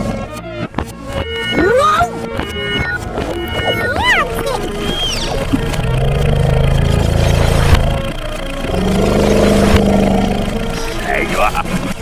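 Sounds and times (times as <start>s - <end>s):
background music: 0.0s - 12.0s
cartoon engine rumbles: 3.0s - 12.0s.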